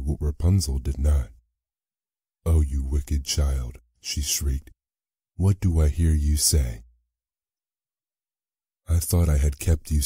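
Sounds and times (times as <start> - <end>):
man speaking: 0.0 - 1.4, 2.5 - 4.7, 5.4 - 6.8.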